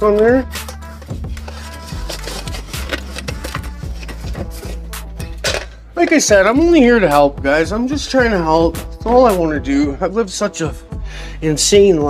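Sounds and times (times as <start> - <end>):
background music: 0.0 - 12.0
lint roller tape crackling: 0.6 - 4.9.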